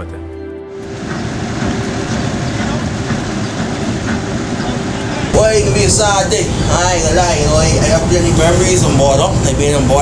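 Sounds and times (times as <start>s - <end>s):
wind buffeting microphone: 0.9s - 10.0s.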